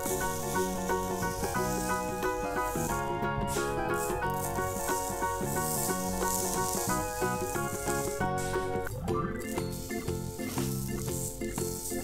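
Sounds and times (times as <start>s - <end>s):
background music: 0.0s - 12.0s
sand scraped with a spoon: 0.0s - 12.0s.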